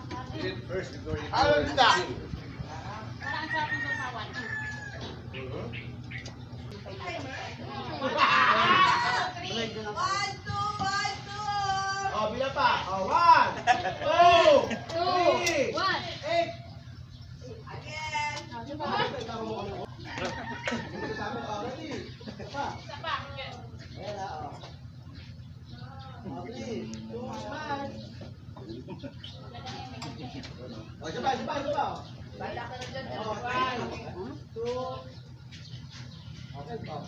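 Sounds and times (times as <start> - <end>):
people's voices: 0.0 - 37.0
rooster crowing: 3.1 - 5.3, 19.8 - 22.0
people talking: 6.7 - 16.6.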